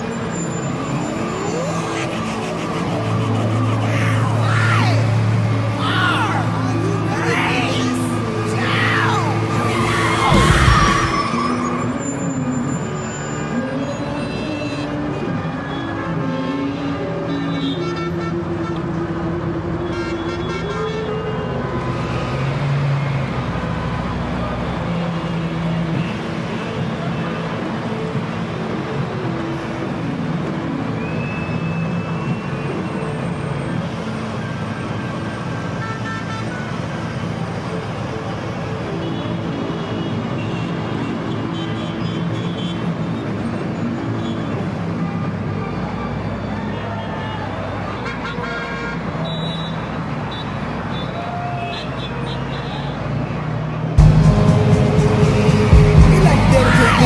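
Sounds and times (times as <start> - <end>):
car engines in traffic jam: 0.0 - 57.0.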